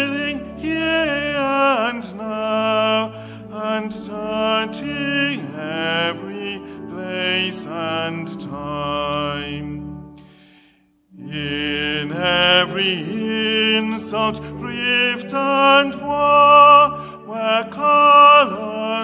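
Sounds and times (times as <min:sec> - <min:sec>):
man singing a hymn: 0:00.0 - 0:10.0, 0:11.1 - 0:19.0
sustained organ chords: 0:00.0 - 0:19.0.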